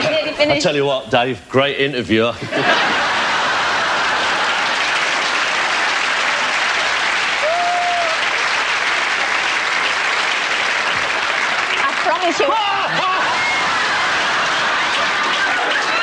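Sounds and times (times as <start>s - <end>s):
studio audience applauding: 2.7s - 16.0s.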